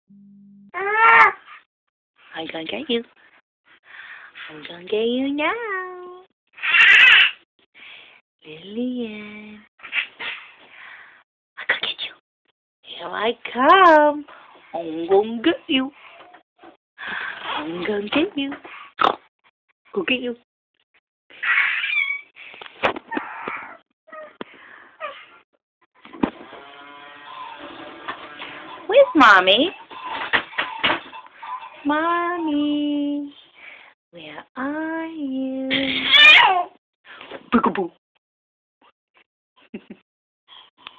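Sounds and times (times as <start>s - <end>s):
high-pitched vocal cry: 0.8s - 1.5s, 6.6s - 7.4s, 21.4s - 22.3s, 35.7s - 36.7s.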